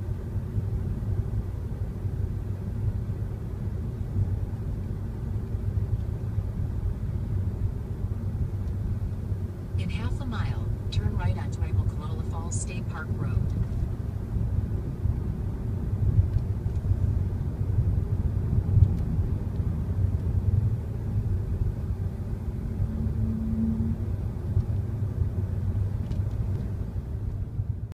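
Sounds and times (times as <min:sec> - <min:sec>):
car engine and tyre rumble: 0:00.0 - 0:28.0.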